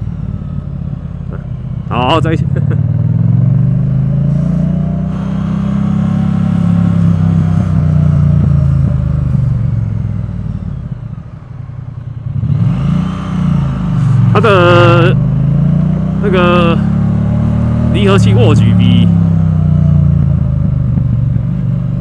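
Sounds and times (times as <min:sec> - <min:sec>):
motorcycle engine accelerating: 0:00.0 - 0:22.0.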